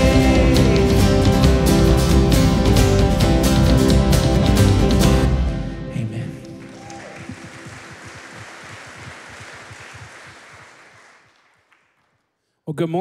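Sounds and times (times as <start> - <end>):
worship band chord with acoustic guitar: 0.0 - 6.2
congregation clapping: 6.4 - 12.4.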